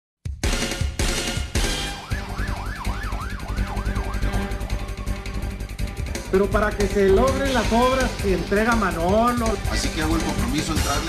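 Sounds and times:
music with steady drum beat: 0.2s - 11.0s
yelp siren: 1.8s - 5.7s.

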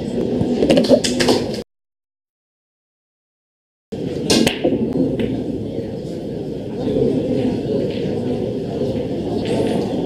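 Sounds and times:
room noise: 4.0s - 10.0s.

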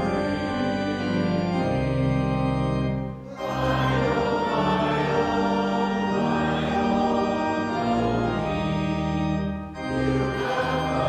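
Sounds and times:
congregation singing a hymn: 0.0s - 11.0s
organ: 0.0s - 11.0s.

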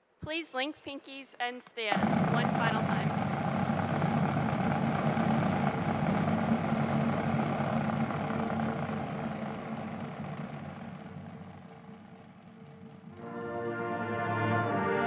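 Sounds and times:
crowd rumble and murmur: 1.9s - 13.2s.

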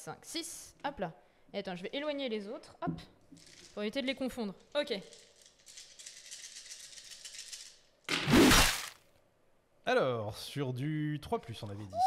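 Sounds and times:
dice rattling in hands: 3.4s - 8.0s.

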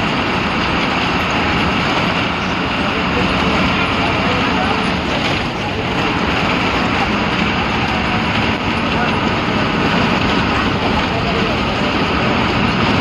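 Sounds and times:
bus diesel engine droning: 0.0s - 13.0s
road and body noise: 0.0s - 13.0s.

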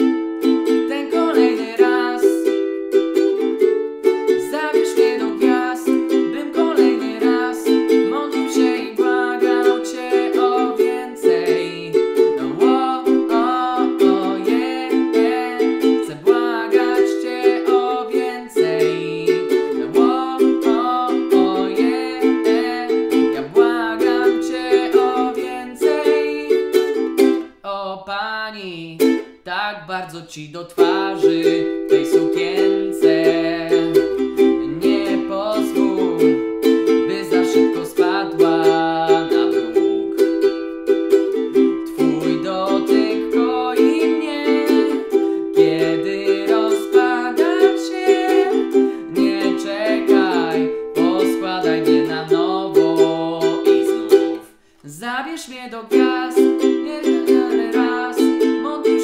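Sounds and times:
ukulele strumming: 0.0s - 27.7s, 28.5s - 59.0s
man singing: 0.0s - 59.0s.

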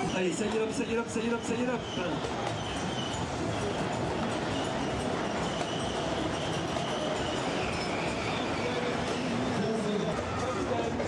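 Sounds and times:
model horses rattling along tracks: 0.0s - 11.0s.

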